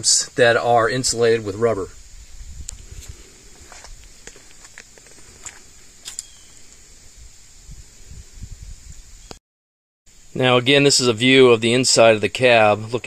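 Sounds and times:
faint high-pitched hiss: 0:00.0 - 0:09.4, 0:10.1 - 0:13.0.

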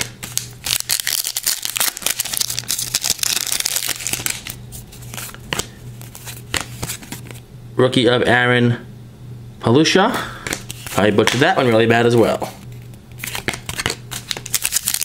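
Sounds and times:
cards rustling and clicking: 0:00.0 - 0:07.4, 0:10.4 - 0:15.0
steady low hum: 0:00.0 - 0:15.0.

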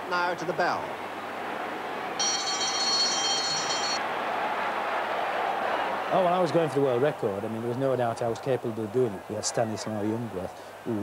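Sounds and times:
crowd noise: 0:00.0 - 0:11.0
bell ringing: 0:02.2 - 0:04.0.

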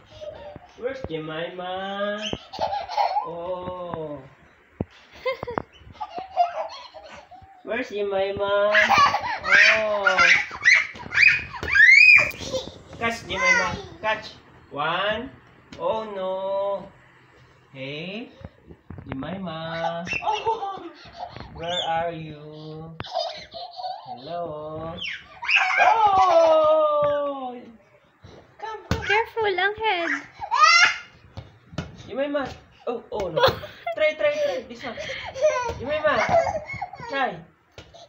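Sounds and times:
toddler girl squealing: 0:09.4 - 0:12.4, 0:25.0 - 0:26.2.

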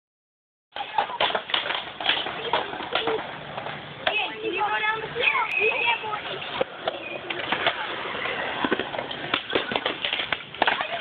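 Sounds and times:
skateboard clacks: 0:00.7 - 0:11.0
skateboards rolling on concrete: 0:00.7 - 0:11.0.

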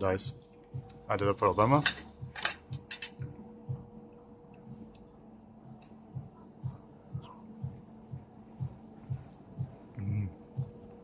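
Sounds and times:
faint steady hum: 0:00.0 - 0:11.0
soft low thumps: 0:02.7 - 0:04.0, 0:05.6 - 0:11.0.

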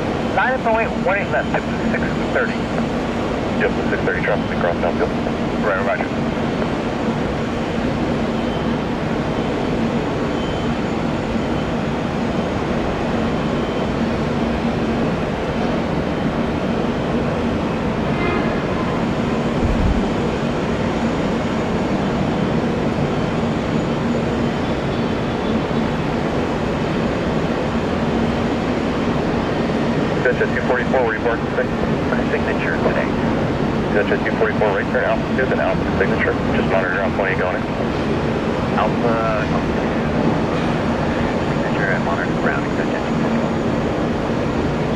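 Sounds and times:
jet engines at takeoff: 0:00.0 - 0:44.9.

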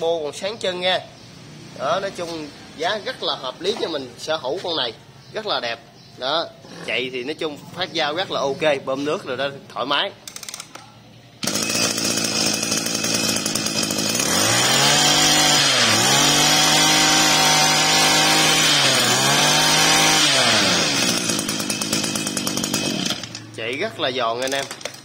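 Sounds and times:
brush cutter engine revving: 0:11.4 - 0:25.0.

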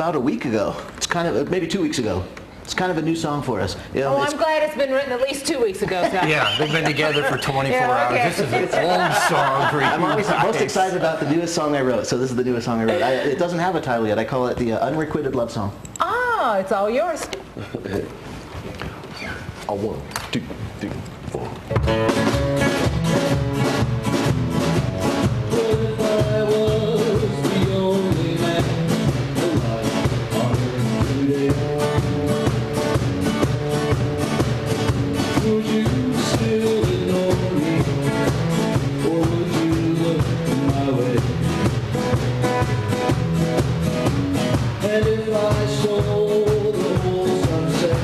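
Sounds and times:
drum kit beat: 0:05.9 - 0:12.4, 0:21.7 - 0:48.0
acoustic guitars strummed: 0:21.7 - 0:48.0
man singing: 0:25.3 - 0:32.6, 0:35.2 - 0:41.6, 0:44.8 - 0:48.0.

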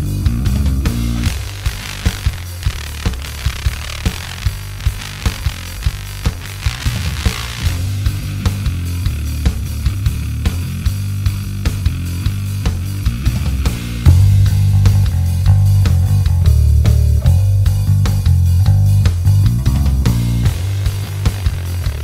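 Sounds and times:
backing track with drums: 0:00.0 - 0:22.0
electric bass guitar: 0:00.0 - 0:22.0.

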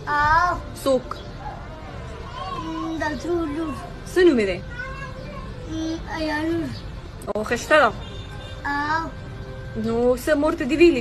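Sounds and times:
child crying out: 0:02.3 - 0:03.9.

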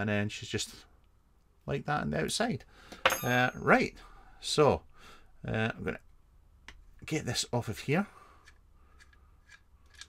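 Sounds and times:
small metal clicks: 0:08.4 - 0:10.0.

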